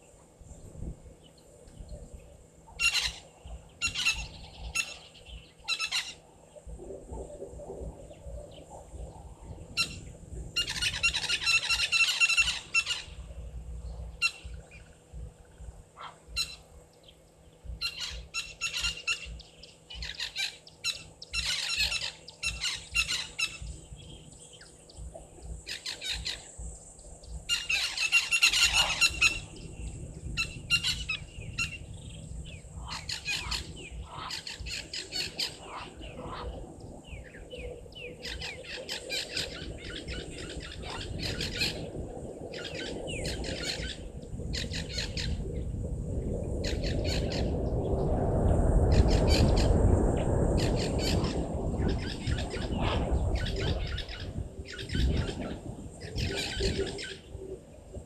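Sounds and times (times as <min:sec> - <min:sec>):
birds squawking: 0:02.8 - 0:06.2, 0:09.8 - 0:13.3, 0:14.1 - 0:14.9, 0:16.0 - 0:16.7, 0:17.8 - 0:23.8, 0:25.7 - 0:26.6, 0:27.5 - 0:29.6, 0:32.5 - 0:36.6.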